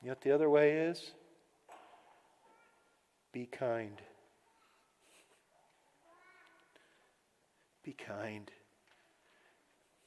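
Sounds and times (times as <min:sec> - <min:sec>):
man's voice: 0:03.3 - 0:04.1, 0:07.8 - 0:08.7.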